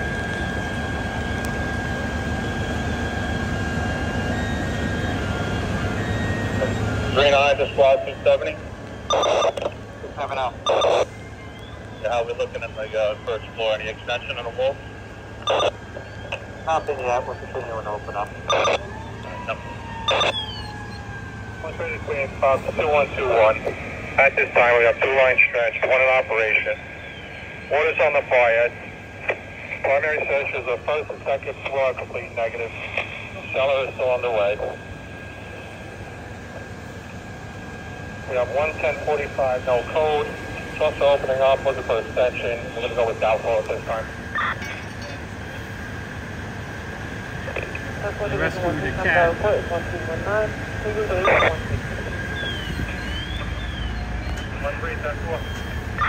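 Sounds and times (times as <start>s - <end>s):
engine drone: 0.0s - 56.0s
high whine: 0.0s - 56.0s
street noise: 0.0s - 56.0s
two-way radio burst: 9.1s - 11.1s, 15.4s - 20.4s, 51.1s - 51.7s.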